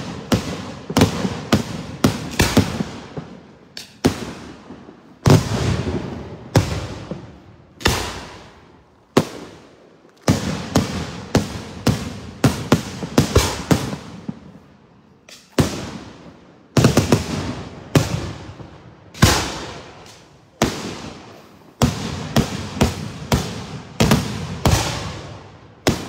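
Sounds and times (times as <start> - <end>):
fireworks bursting with echo: 0.0 - 26.0.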